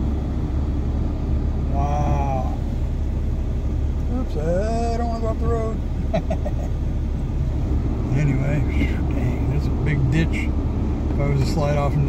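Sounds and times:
truck engine low rumble: 0.0 - 12.0
person laughing: 6.0 - 6.8.

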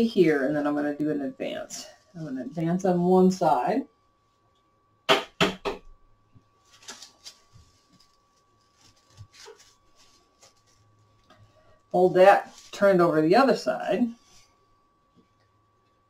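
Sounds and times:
straws rustling: 6.6 - 11.2, 12.1 - 13.0.

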